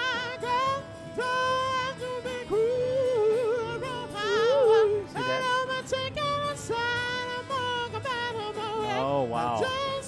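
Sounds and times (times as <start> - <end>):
man singing with vibrato: 0.0 - 10.0.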